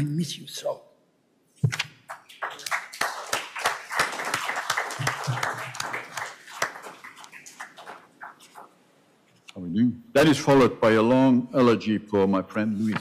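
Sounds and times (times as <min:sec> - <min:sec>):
audience applauding: 0:02.1 - 0:08.7.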